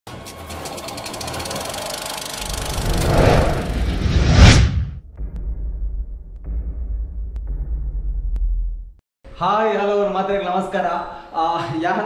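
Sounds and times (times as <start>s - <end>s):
rapid ticking texture: 0.2s - 3.8s
loud rising whoosh: 2.4s - 6.1s
bass-heavy music bed: 5.1s - 9.0s.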